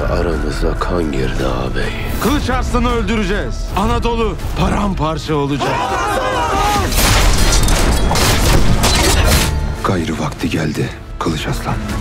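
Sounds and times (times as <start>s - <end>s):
dramatic music: 0.0s - 12.0s.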